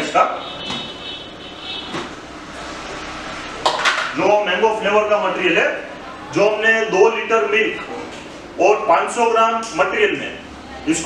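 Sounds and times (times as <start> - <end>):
mechanical hum: 0.0 - 11.0.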